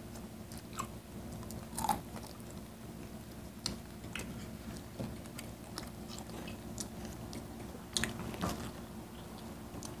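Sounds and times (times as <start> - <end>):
crunchy chewing: 0.1 - 2.6, 3.6 - 10.0.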